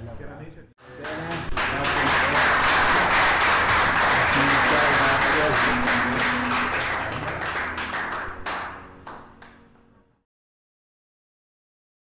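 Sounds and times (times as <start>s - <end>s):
audience clapping: 0.8s - 9.9s.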